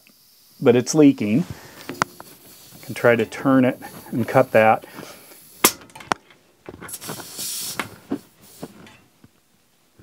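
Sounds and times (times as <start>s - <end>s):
air hissing from valve: 0.0s - 5.9s, 6.9s - 8.8s.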